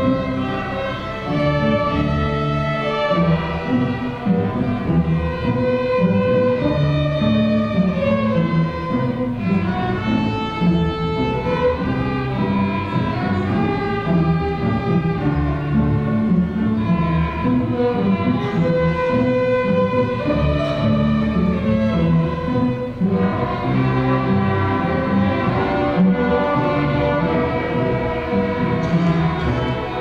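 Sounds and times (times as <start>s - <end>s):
string orchestra playing: 0.0s - 30.0s.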